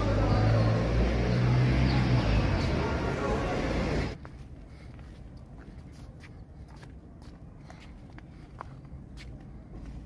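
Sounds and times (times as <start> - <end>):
footsteps on brick paving: 4.1 - 10.0.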